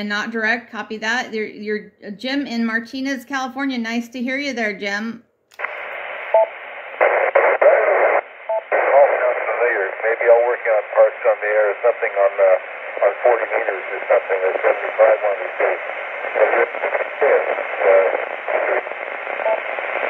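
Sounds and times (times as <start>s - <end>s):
radio hiss: 5.6s - 20.0s
tinny radio speech: 6.9s - 20.0s.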